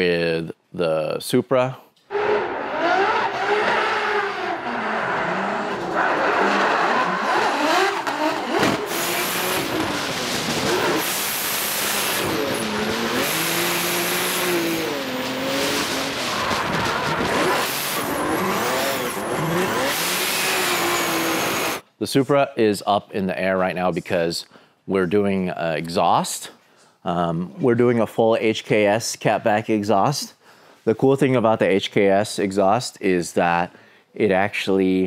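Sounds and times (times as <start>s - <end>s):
car engine revving: 2.1s - 21.8s.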